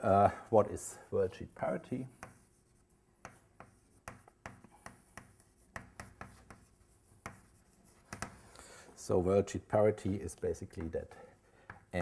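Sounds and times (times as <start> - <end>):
chalk tapping and scratching: 0.7 - 8.8, 9.7 - 12.0.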